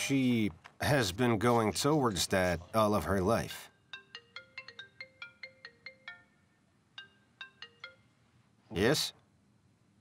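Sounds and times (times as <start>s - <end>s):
mobile phone ringtone melody: 3.6s - 8.4s.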